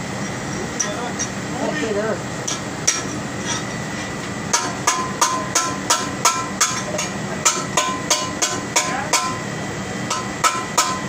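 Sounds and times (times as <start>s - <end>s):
machinery hum: 0.0s - 11.0s
hammer striking metal: 4.5s - 9.5s, 10.1s - 11.0s.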